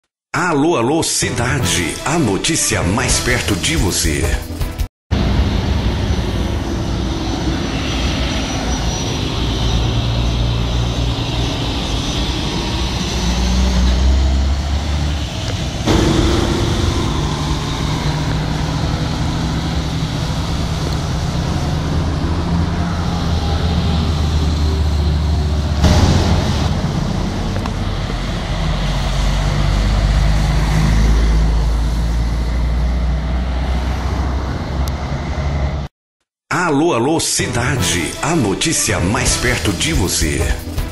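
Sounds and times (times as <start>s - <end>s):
road and engine rumble: 5.1s - 35.9s
truck traffic: 8.1s - 35.9s.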